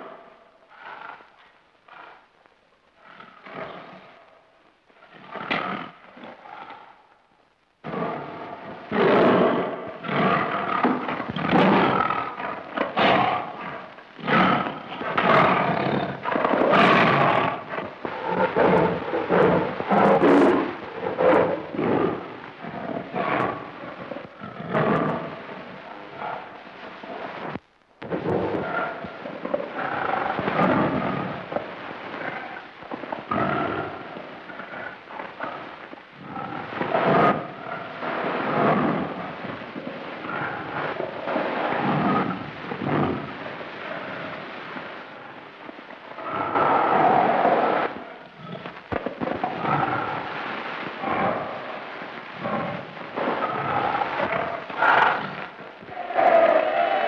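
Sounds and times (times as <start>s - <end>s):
tiger roaring and snarling: 8.9s - 23.8s, 52.4s - 57.0s.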